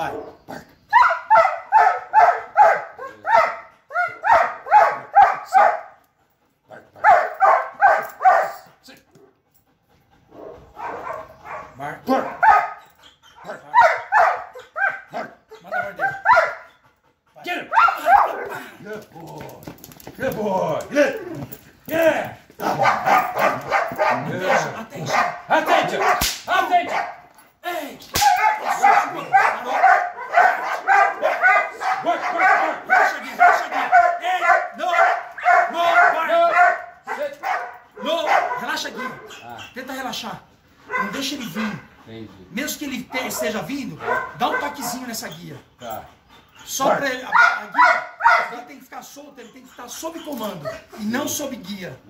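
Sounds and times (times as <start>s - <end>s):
dog barking: 0.0s - 6.0s, 7.0s - 8.7s, 10.3s - 16.7s, 17.7s - 18.6s, 22.6s - 27.3s, 28.2s - 39.6s, 40.9s - 41.9s, 43.1s - 45.1s, 46.8s - 48.7s.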